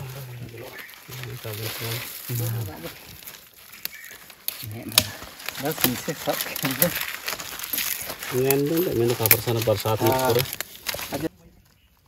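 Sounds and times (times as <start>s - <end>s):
person talking: 0.0s - 3.0s, 8.3s - 11.3s
crackling dry leaves and twigs: 0.0s - 12.0s.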